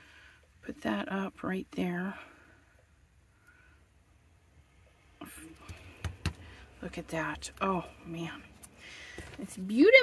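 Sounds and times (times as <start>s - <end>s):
woman speaking: 0.6s - 2.3s, 6.8s - 8.5s, 9.3s - 10.0s.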